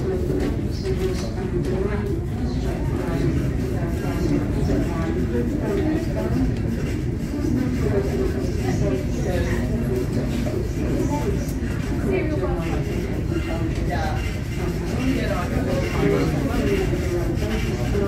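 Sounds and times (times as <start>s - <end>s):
indistinct chatter: 0.0s - 18.0s.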